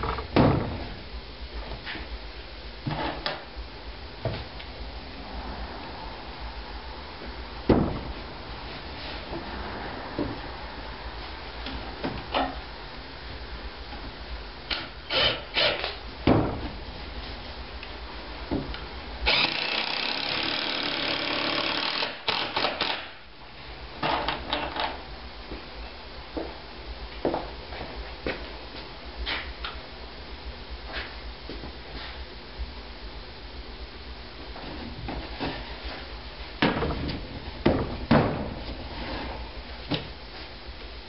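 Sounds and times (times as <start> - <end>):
impact driver driving screw: 19.3 - 23.1.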